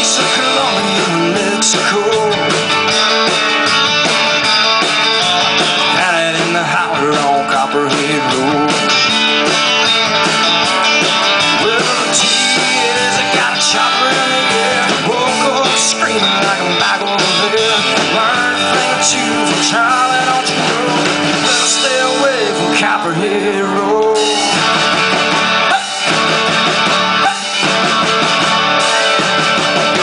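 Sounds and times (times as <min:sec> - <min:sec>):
bass guitar: 0:00.0 - 0:30.0
drums: 0:00.0 - 0:30.0
electric guitar: 0:00.0 - 0:30.0.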